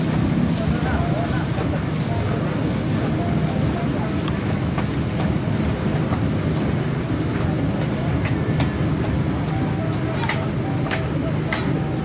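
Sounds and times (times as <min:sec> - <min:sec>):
crowd voices: 0:06.6 - 0:12.0.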